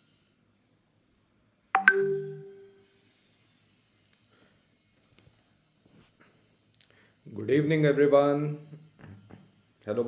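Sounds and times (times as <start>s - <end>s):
two-note chime: 1.8s - 2.8s.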